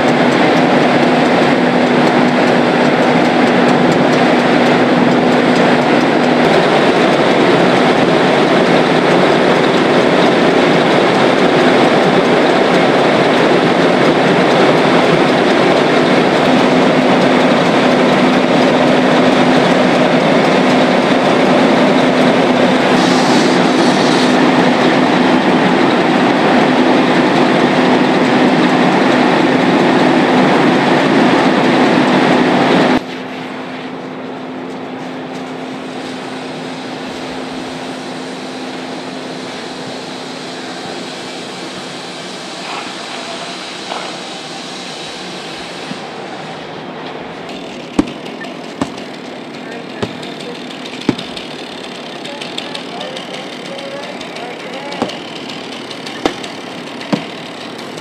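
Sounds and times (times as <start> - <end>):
diesel engine and pump roaring: 0.0 - 58.0.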